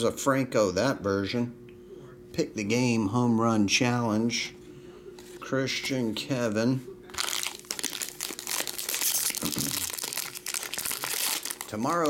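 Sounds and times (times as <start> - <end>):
foil wrapper crinkling and tearing: 7.1 - 12.0.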